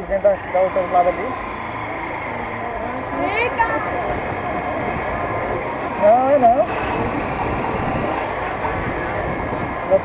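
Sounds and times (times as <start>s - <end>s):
road noise: 0.0s - 10.0s
small motorcycle engine: 0.0s - 10.0s.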